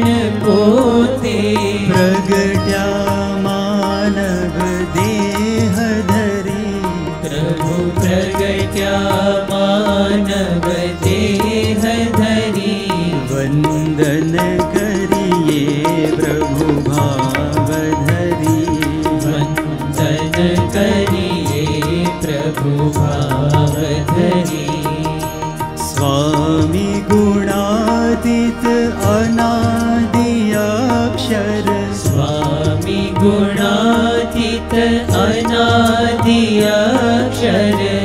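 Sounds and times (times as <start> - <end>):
harmonium drone: 0.0 - 38.0
man singing: 0.0 - 38.0
sitar-like string instrument: 0.0 - 38.0
tabla strokes: 8.0 - 27.6.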